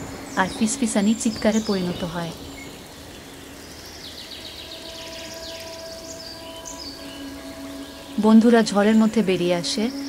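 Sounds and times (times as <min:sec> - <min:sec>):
faint held tone: 0:04.7 - 0:10.0.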